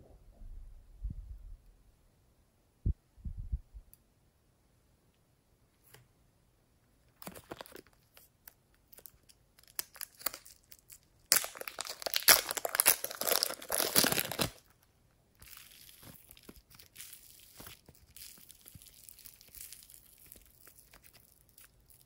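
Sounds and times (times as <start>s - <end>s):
plastic packet crinkling: 7.2s - 8.3s, 8.9s - 14.8s, 15.4s - 22.0s
modelling clay tearing rustle: 8.9s - 14.8s, 15.4s - 22.0s.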